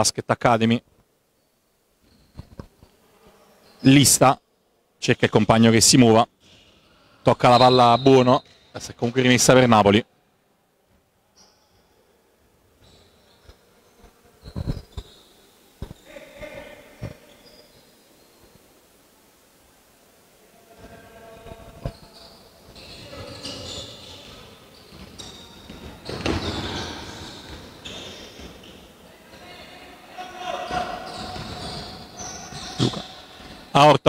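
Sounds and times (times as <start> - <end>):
shoes squeaking: 1.4 - 3.0, 12.8 - 18.5, 21.4 - 33.7
basketball bouncing on wood floor: 25.1 - 27.7
players calling out: 29.3 - 33.9.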